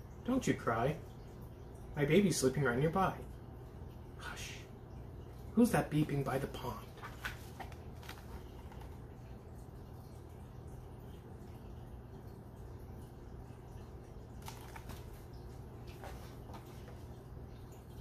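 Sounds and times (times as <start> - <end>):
steady low hum: 0.0 - 18.0
book handling: 6.9 - 9.0, 14.4 - 17.0.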